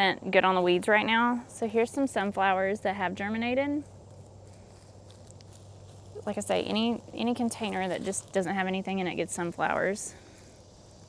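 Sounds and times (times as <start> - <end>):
faint low rumble: 0.0 - 11.0.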